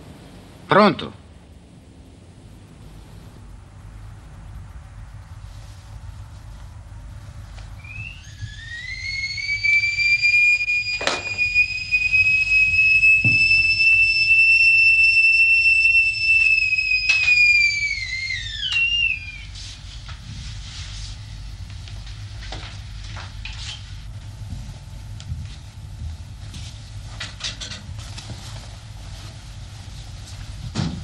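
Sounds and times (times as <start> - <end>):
stovetop kettle whistling: 1.7 - 31.0.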